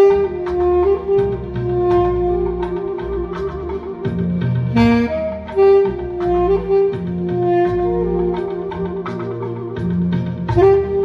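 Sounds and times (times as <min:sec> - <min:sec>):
backing track with bass: 0:00.0 - 0:11.0
saxophone slow melody: 0:00.0 - 0:11.0.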